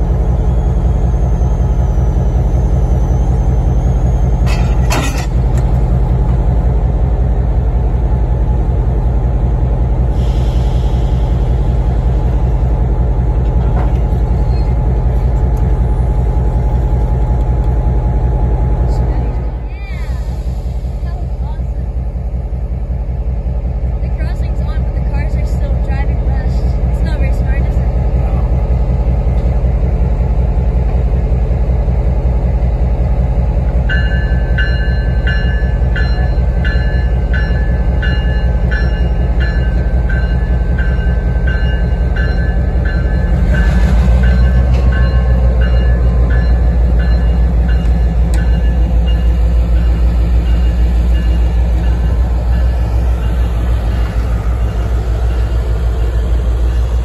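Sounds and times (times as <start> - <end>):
locomotive engine running: 0.0 - 57.0.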